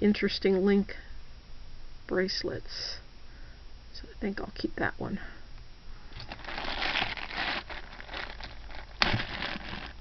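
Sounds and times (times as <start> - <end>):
plastic packaging crinkling: 6.1 - 10.0.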